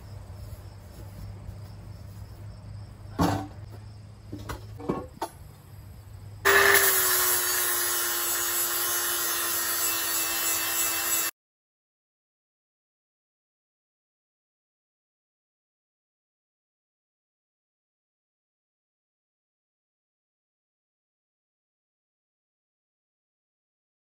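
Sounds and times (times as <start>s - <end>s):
angle grinder grinding steel: 6.5s - 11.3s.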